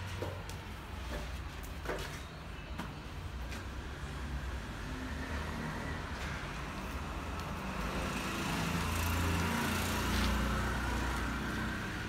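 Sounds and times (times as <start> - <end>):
vehicle passing: 3.8 - 12.0.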